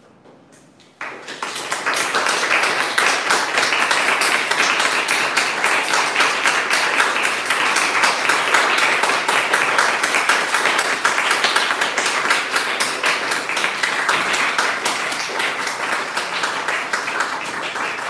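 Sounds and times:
audience applauding: 1.0 - 18.0.

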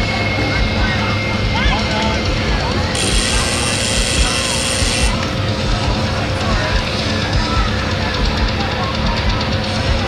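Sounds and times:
loud indistinct voices: 0.0 - 10.0
thin steady whine: 0.0 - 10.0.

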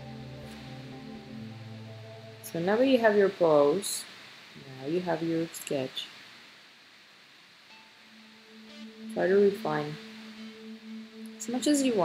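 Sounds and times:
soft background music: 0.0 - 3.8, 7.7 - 12.0
faint steady hiss: 0.0 - 12.0.

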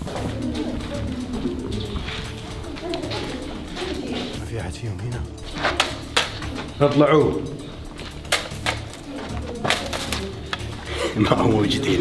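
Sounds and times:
doves cooing: 0.0 - 4.4, 5.4 - 12.0
music: 0.0 - 12.0.

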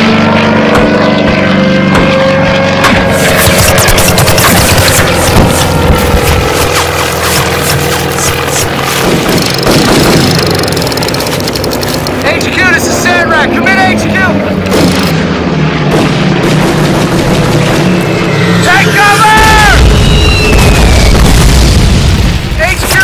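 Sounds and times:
steady low rumble: 0.0 - 22.8
war sound effects: 0.0 - 23.0.

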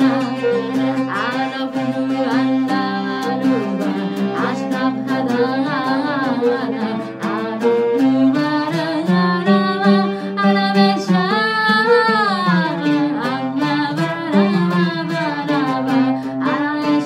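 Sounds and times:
oud plucked notes: 0.0 - 17.0
violin: 0.0 - 17.0
woman singing: 0.0 - 17.0.

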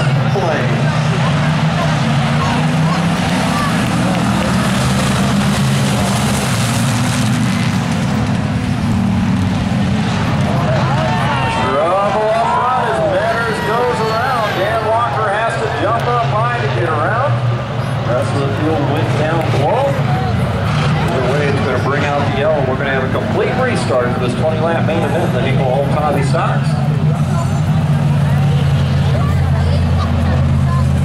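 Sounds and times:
voices: 0.0 - 6.5, 10.0 - 31.0
race car engines droning: 0.0 - 31.0.

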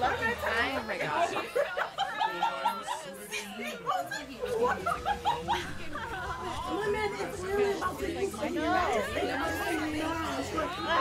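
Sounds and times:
dialogue voices: 0.0 - 11.0.

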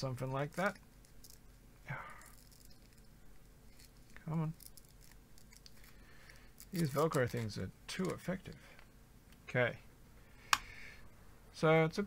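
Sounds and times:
cable rustling: 0.0 - 8.9.

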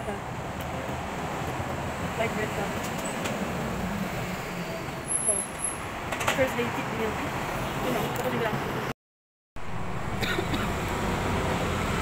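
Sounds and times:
street traffic noise: 0.0 - 9.0, 9.6 - 12.0.

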